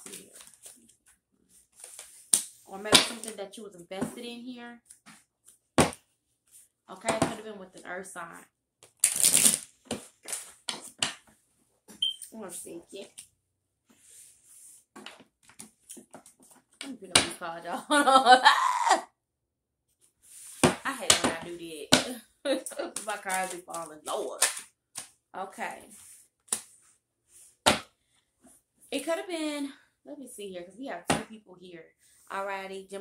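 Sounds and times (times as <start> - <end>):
cards flicking and rustling: 26.4 - 26.8.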